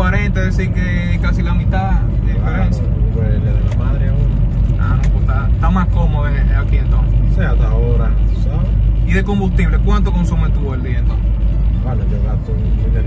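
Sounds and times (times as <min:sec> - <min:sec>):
car engine rumble and road noise: 0:00.0 - 0:13.0
men talking: 0:00.0 - 0:13.0.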